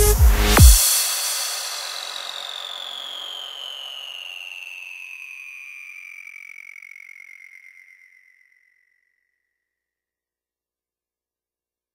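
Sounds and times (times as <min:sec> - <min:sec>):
synth tone gliding downward: 0:01.0 - 0:09.0.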